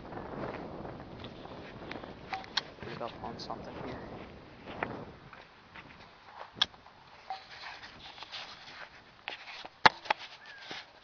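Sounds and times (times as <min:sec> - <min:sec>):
footsteps on grass: 0:00.3 - 0:11.0
handling noise: 0:00.4 - 0:11.0.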